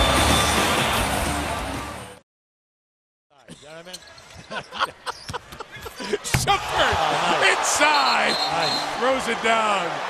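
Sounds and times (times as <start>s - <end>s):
arena crowd noise: 3.7s - 10.0s.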